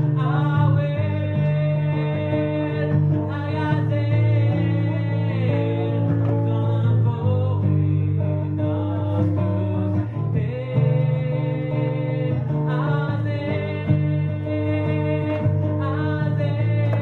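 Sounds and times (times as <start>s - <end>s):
acoustic guitar: 0.0s - 17.0s
man singing: 0.0s - 17.0s.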